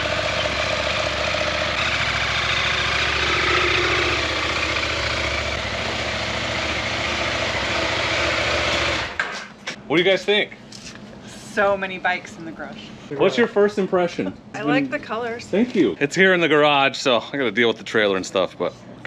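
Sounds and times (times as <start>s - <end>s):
motorcycle engine running: 0.0s - 9.3s.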